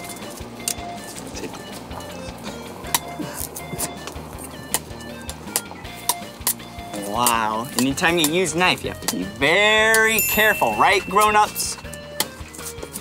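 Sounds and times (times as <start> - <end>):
light background music: 0.0 - 13.0.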